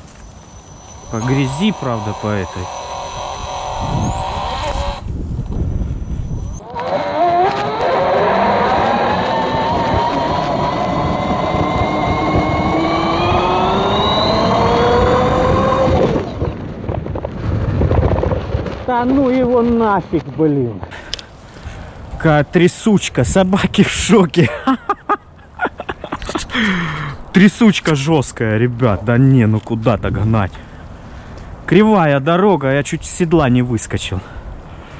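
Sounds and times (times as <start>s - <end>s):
electric motor whining: 0.0s - 16.6s
bike rumbling over dirt road: 6.4s - 19.9s.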